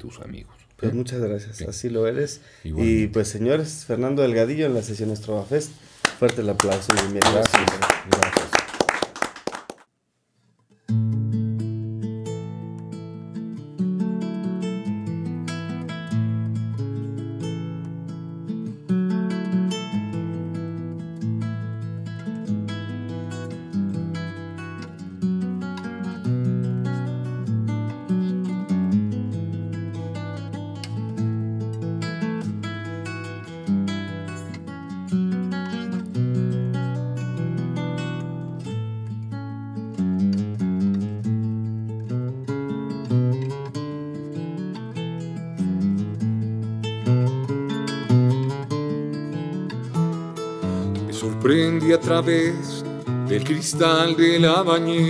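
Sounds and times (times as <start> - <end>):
people clapping: 6.0 - 9.9
classical guitar plucking: 10.7 - 55.0.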